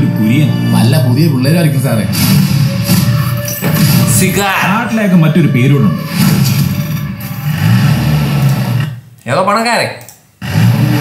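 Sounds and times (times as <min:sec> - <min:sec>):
man speaking: 0:04.0 - 0:06.1.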